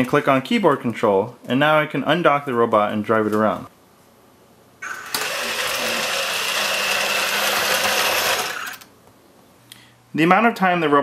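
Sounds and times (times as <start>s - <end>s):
robot drive motors whirring: 4.8s - 8.9s.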